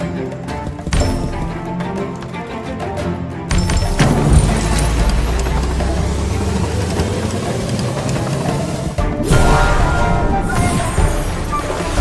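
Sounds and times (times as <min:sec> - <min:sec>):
slot game rumbling effect: 0:03.6 - 0:12.0.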